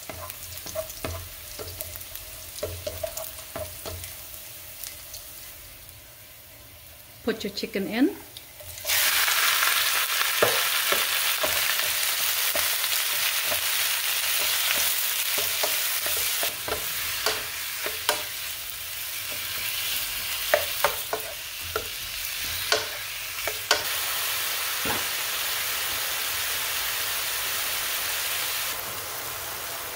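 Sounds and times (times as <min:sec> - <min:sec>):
spatula tapping pan: 0:00.0 - 0:02.0, 0:02.6 - 0:04.1, 0:10.4 - 0:18.4, 0:20.5 - 0:23.9
chicken sizzling in hot oil: 0:00.0 - 0:07.2, 0:08.3 - 0:29.9.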